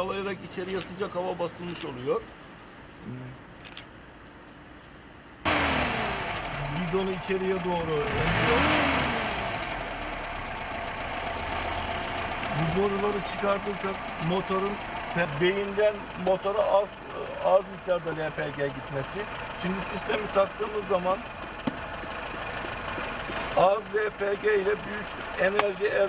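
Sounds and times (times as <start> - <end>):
car engine idling: 5.5 - 26.0.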